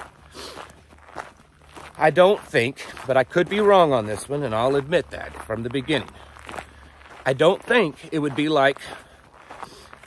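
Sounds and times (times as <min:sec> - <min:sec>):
footsteps on dirt road: 0:00.0 - 0:10.0.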